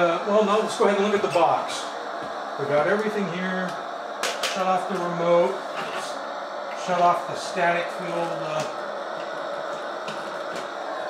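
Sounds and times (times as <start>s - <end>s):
static hiss from speaker: 0.0s - 11.0s.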